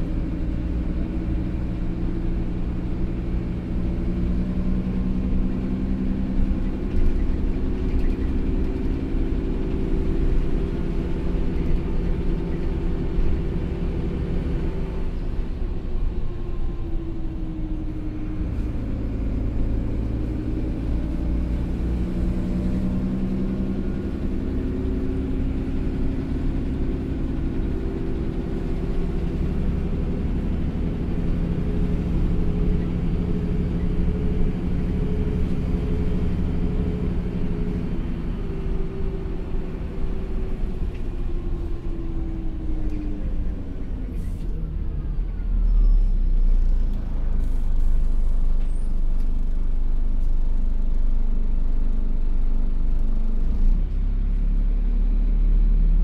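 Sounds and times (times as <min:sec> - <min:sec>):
bus diesel engine running: 0:00.0 - 0:56.0
road rumble: 0:00.0 - 0:56.0.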